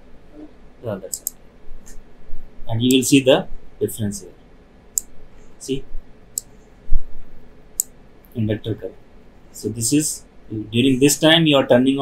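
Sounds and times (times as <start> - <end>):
computer mouse clicks: 1.1 - 2.0.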